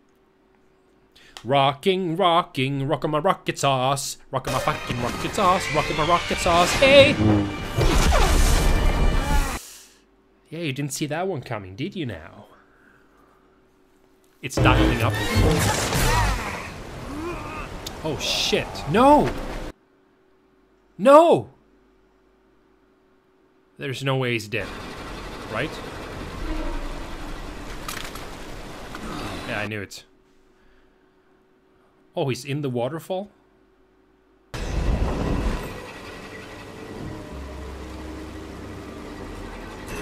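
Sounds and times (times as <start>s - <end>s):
cartoon soundtrack music: 4.4s - 9.6s, 14.6s - 16.5s
falling tone: 5.8s - 9.6s
loud crash: 6.5s - 9.6s
deep rumble: 6.7s - 9.0s.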